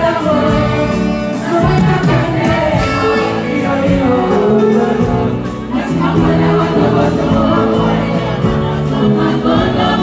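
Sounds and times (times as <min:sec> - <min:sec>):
live band with singing: 0:00.0 - 0:10.0.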